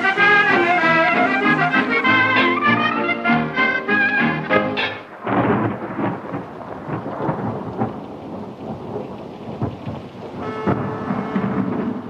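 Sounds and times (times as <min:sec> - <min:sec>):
brass swing band tune: 0:00.0 - 0:05.1
steady rain: 0:00.0 - 0:12.0
thunder rumbling: 0:00.0 - 0:12.0.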